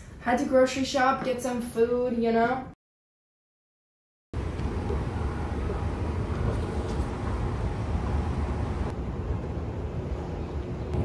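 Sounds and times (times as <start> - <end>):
escalator hum and rumble: 4.4 - 11.0.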